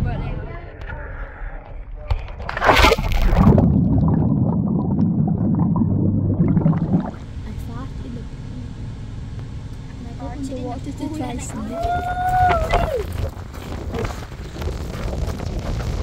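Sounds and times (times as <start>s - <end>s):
splash into swimming pool: 2.4s - 4.1s
muffled underwater bubbles: 2.5s - 7.3s
car cabin hum on road: 7.2s - 13.5s.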